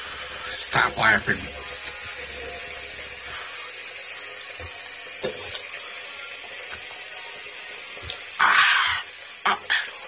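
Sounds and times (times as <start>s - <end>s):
tap running into sink: 4.4s - 8.3s.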